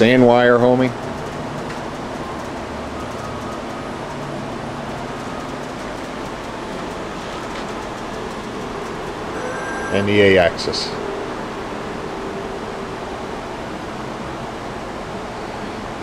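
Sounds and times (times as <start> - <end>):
machine axis drives running: 0.0 - 12.1.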